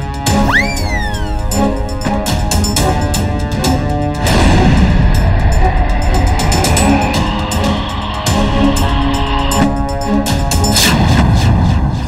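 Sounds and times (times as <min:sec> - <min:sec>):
action background music: 0:00.0 - 0:12.0.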